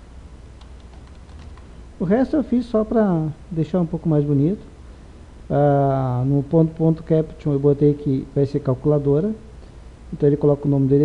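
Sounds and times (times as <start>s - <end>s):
low steady hum: 0.0s - 11.0s
keyboard keystroke clicks: 0.6s - 1.7s.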